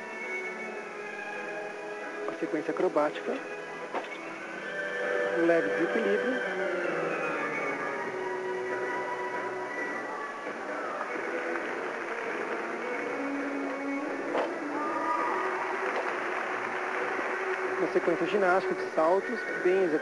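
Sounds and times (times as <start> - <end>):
music playing in arena: 0.0 - 20.0
crowd murmur: 5.5 - 20.0.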